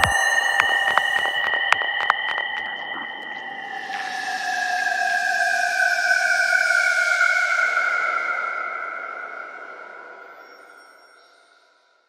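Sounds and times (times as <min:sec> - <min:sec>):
synthesizer tone sliding downward: 0:00.0 - 0:04.8.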